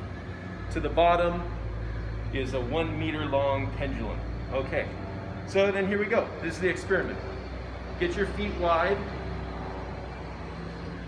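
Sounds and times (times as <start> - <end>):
low background hum and rumble: 0.0 - 11.0.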